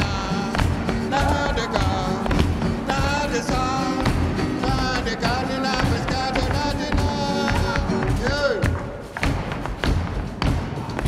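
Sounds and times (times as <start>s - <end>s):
person singing: 0.0s - 8.9s
acoustic guitar: 0.0s - 11.0s
feet stamping on wooden floor: 0.0s - 11.0s.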